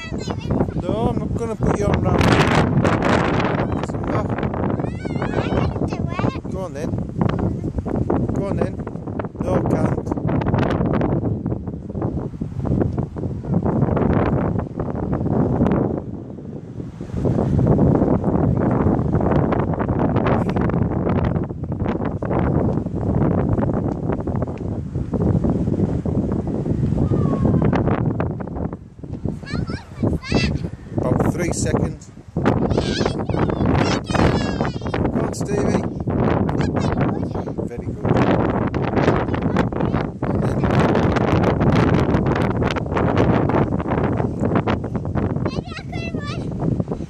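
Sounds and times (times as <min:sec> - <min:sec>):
wind buffeting microphone: 0:00.0 - 0:47.0.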